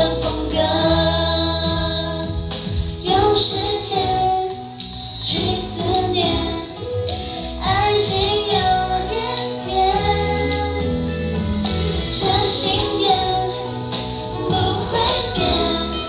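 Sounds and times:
women singing pop song: 0.0 - 16.0.

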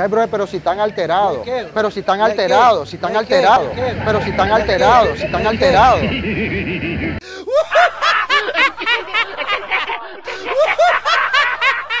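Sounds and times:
high-pitched giggling laugh: 3.8 - 12.0.

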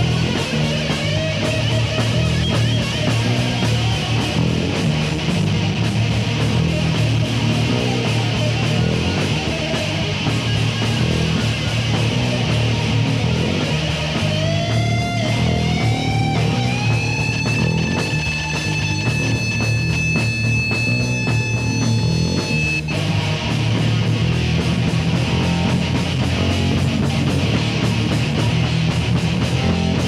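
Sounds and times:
heavy metal band playing: 0.0 - 30.0
lead guitar bending note: 5.5 - 27.0.

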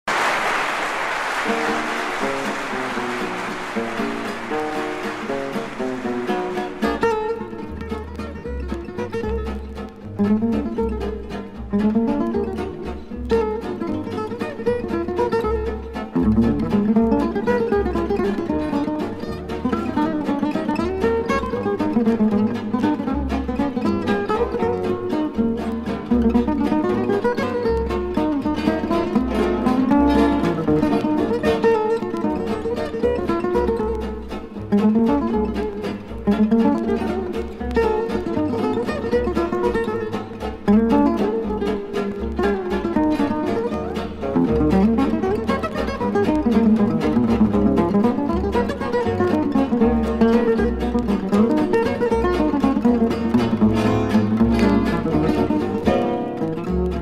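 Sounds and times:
audience applause: 0.0 - 7.8
acoustic guitar swing waltz: 2.8 - 57.0.

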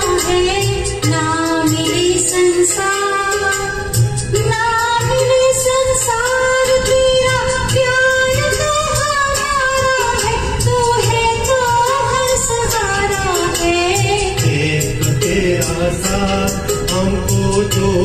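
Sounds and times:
karaoke backing track: 0.0 - 18.0
woman singing into microphone: 0.0 - 18.0.

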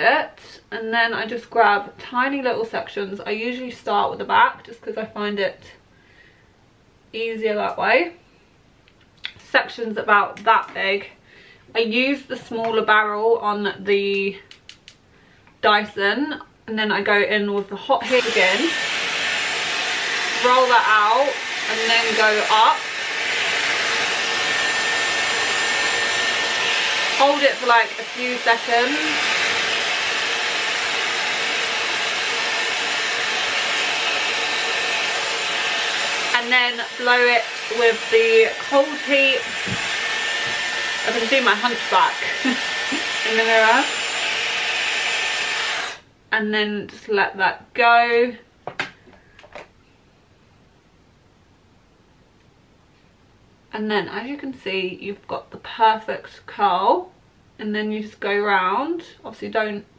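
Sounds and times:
hair styler blowing hot air: 18.0 - 46.0.

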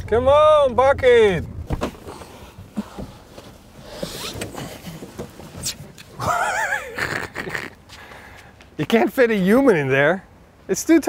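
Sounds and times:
rustling and light knocks: 1.7 - 6.2
short wavering laugh: 6.2 - 7.8.

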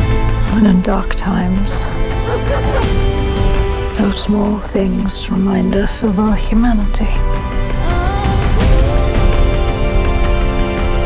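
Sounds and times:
orchestral film score music: 0.0 - 11.0
dog barking: 2.2 - 3.0.

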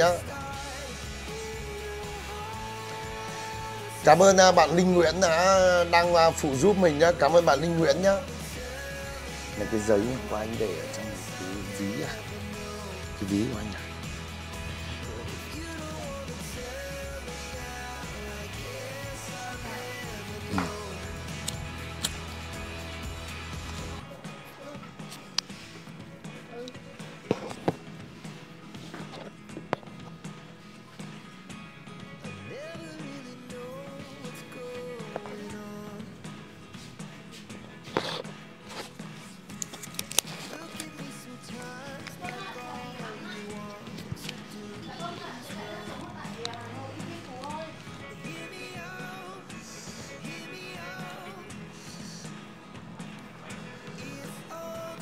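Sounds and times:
soft background music: 0.0 - 55.0
song with vocals: 0.0 - 55.0.

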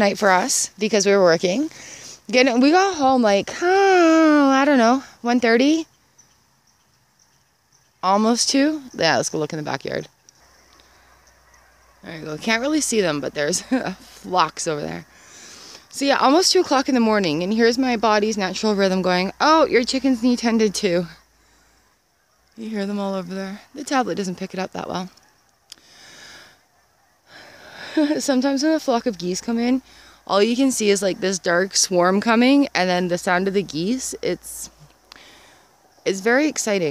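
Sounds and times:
person breathing softly: 1.7 - 2.3, 15.1 - 15.9, 21.4 - 22.0, 25.8 - 26.7, 29.8 - 30.3, 35.1 - 35.9
geese honking: 9.7 - 34.4.

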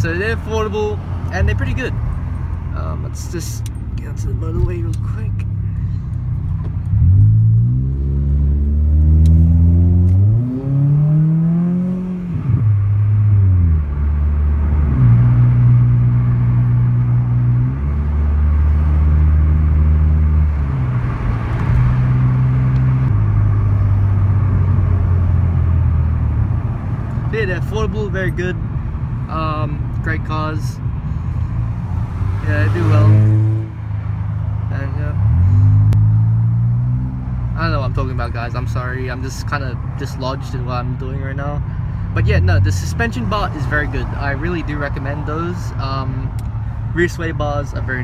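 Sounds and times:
car engine accelerating: 1.0 - 27.6, 30.9 - 40.3.

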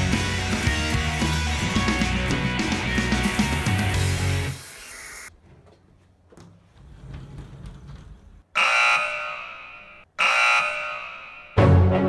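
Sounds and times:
electronic alarm tone: 8.6 - 11.6.

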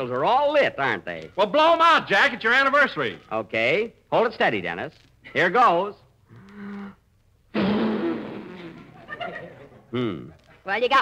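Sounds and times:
man blowing forcefully: 6.6 - 9.0.

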